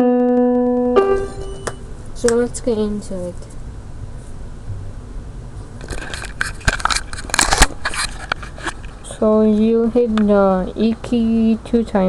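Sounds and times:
low steady room noise: 0.0s - 12.0s
camera handling rustling: 5.8s - 8.9s.

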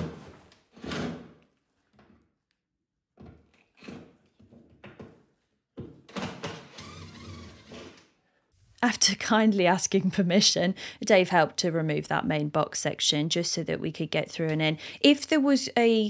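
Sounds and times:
cordless drill driving screws: 6.1s - 8.0s.

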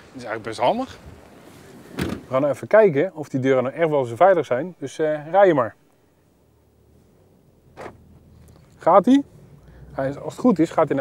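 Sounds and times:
car engine low rumble: 6.1s - 11.0s.

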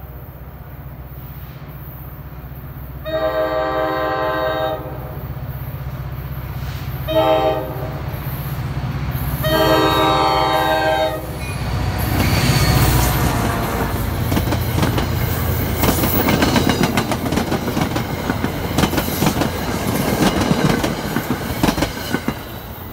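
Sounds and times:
locomotive engine rumble: 0.0s - 22.9s
train horn blast: 3.0s - 5.3s, 7.0s - 8.1s, 9.4s - 11.6s, 12.4s - 14.1s
train wheels clattering over rails: 11.4s - 22.9s.

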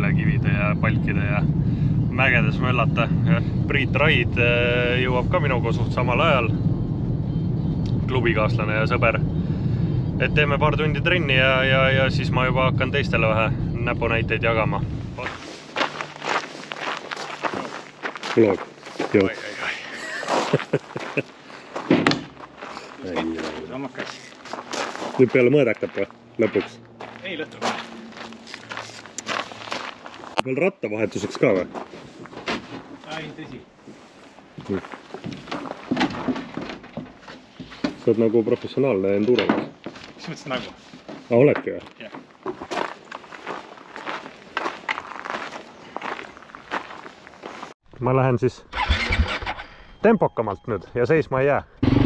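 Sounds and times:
footsteps on gravel: 15.2s - 30.4s, 42.0s - 47.8s
sharp scuffs on gravel: 15.3s - 19.5s, 24.0s - 26.1s, 27.0s - 30.4s.

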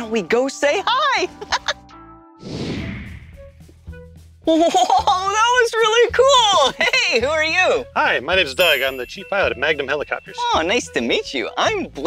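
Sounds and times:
quiet background music: 0.0s - 12.0s
whoosh: 2.4s - 3.5s.

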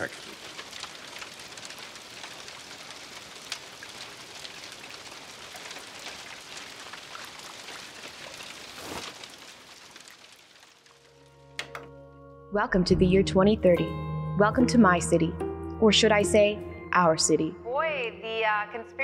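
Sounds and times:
crackling hiss: 0.0s - 11.4s.

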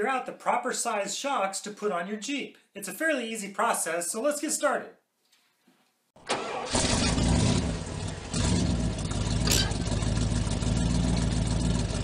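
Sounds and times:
vehicle engine starting and running: 6.2s - 12.0s.

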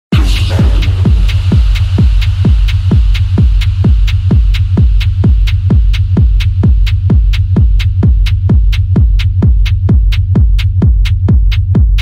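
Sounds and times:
deep bass hum: 0.1s - 12.0s
techno kick drum: 0.1s - 12.0s.

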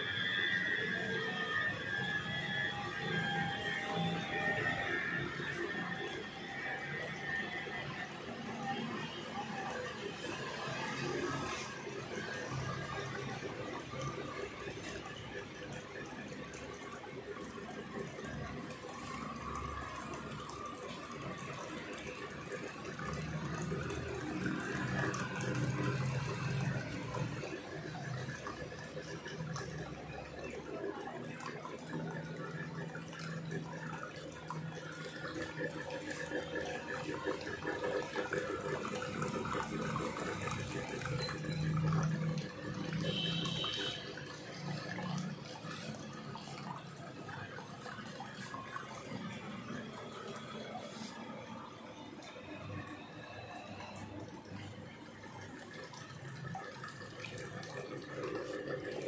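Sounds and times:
water splashing steadily: 0.0s - 59.0s.

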